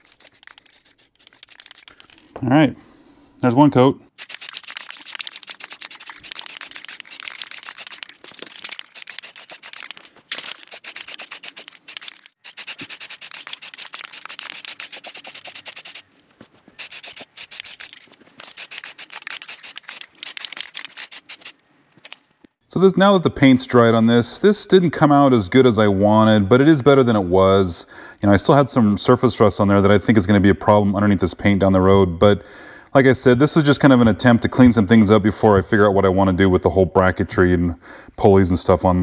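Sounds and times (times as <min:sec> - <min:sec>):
spray paint can hissing bursts: 0:00.0 - 0:02.0, 0:04.1 - 0:16.0, 0:16.8 - 0:21.6.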